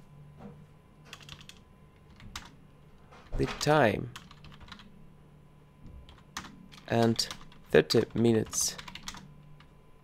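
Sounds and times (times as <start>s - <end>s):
computer keyboard keys clicking: 1.1s - 2.6s, 4.2s - 4.9s, 6.1s - 9.7s.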